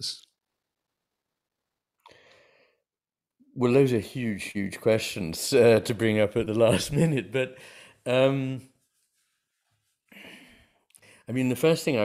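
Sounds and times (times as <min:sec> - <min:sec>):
man breathing: 0:02.0 - 0:03.0, 0:07.6 - 0:08.1, 0:10.1 - 0:11.3
man speaking: 0:03.6 - 0:08.7, 0:11.3 - 0:12.0.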